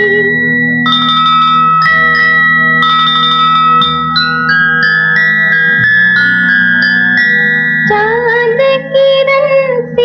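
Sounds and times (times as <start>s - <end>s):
bell-like struck notes: 0.0s - 9.8s.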